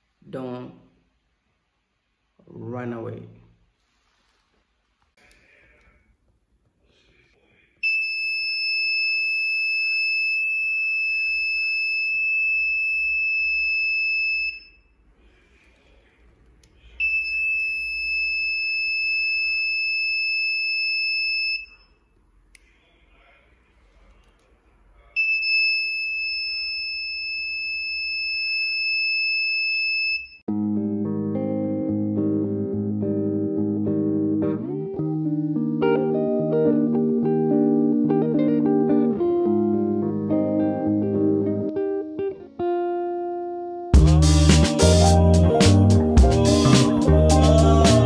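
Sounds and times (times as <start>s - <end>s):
guitar music: 30.5s - 48.0s.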